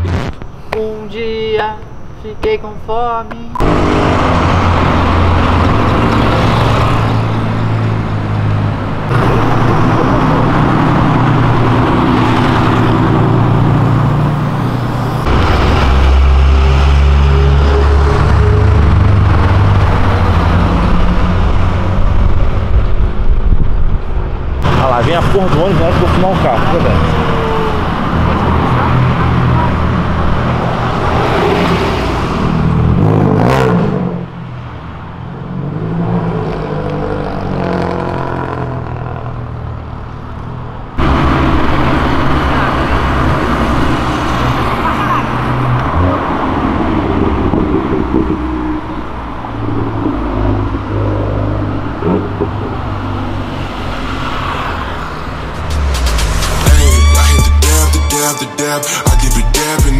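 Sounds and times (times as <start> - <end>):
cars and motorcycles passing: 0.0 - 59.9.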